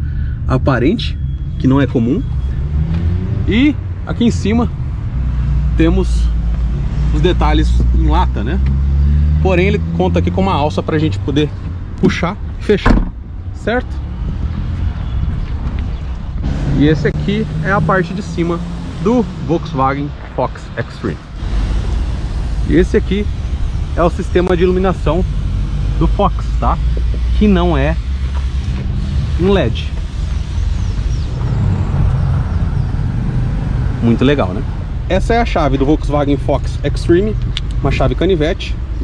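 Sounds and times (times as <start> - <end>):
wind rumbling on microphone: 12.9 - 16.7.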